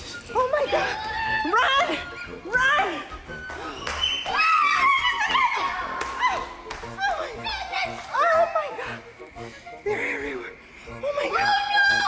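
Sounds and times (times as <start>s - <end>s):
background music: 0.0s - 12.0s
excited voices: 0.4s - 9.2s, 9.8s - 12.0s.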